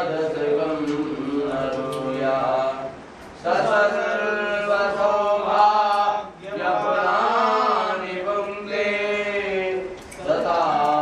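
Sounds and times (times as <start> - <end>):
mantra chanting in long held tones: 0.0 - 11.0.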